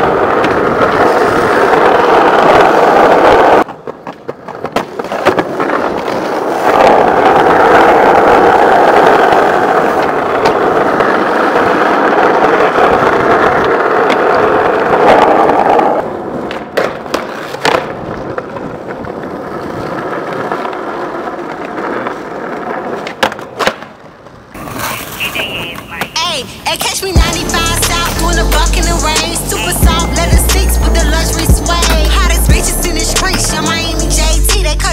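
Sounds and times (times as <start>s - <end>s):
skateboard wheels rolling on asphalt: 0.0s - 34.9s
skateboard clacking on concrete ledges: 3.4s - 27.2s.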